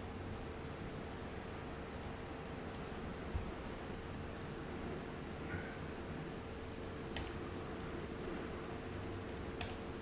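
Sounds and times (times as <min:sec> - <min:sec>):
faint steady hum: 0:00.0 - 0:10.0
computer keyboard clicking: 0:01.9 - 0:02.2, 0:06.7 - 0:08.0, 0:09.0 - 0:09.9.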